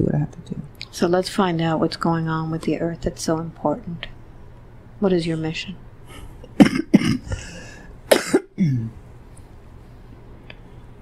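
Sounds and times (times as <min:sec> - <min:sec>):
person coughing: 0:06.5 - 0:09.0.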